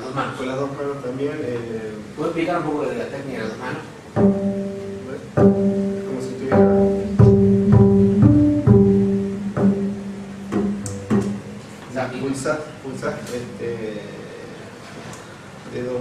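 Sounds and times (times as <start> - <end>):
double bass plucked notes: 4.1 - 11.8.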